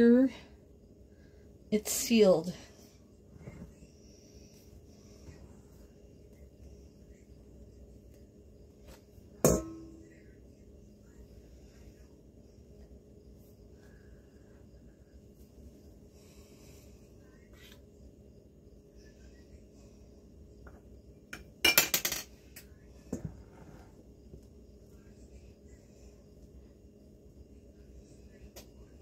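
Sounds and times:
low steady hum: 0:00.0 - 0:29.0.

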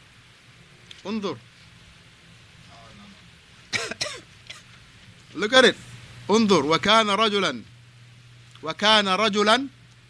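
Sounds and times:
man coughing: 0:03.7 - 0:04.7.

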